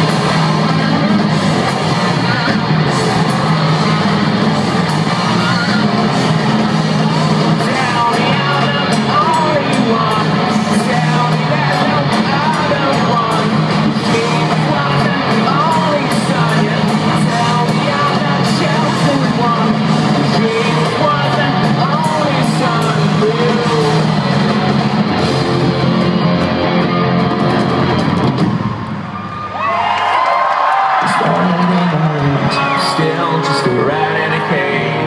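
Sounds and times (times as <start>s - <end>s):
live rock band playing: 0.0s - 29.4s, 31.2s - 35.0s.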